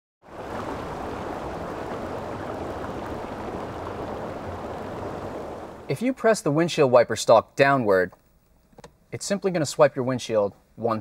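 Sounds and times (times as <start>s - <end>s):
steady rushing noise: 0.3s - 5.9s.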